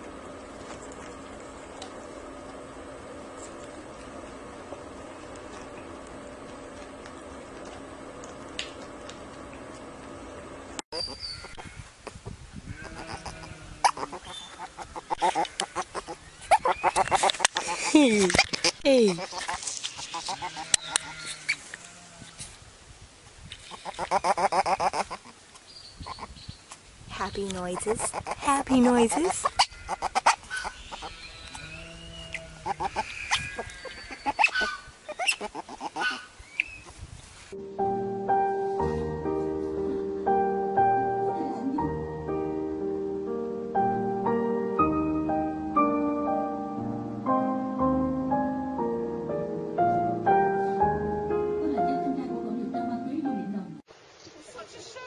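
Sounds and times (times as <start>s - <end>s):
steady low hum: 0.0s - 10.8s
otter chirping and squeaking: 10.9s - 11.6s, 12.9s - 21.6s, 23.7s - 25.3s, 26.0s - 26.6s, 27.2s - 37.0s
soft piano music: 37.5s - 53.9s.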